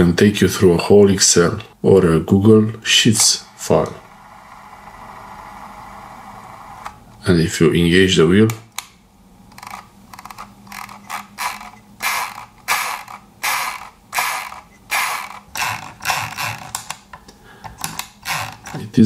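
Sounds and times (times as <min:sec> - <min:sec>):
mouse scroll wheel ratcheting clicks: 0:09.5 - 0:17.0.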